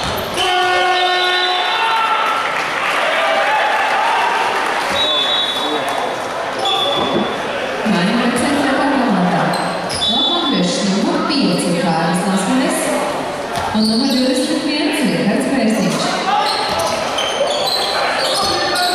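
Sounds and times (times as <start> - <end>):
crowd noise: 0.0 - 18.9.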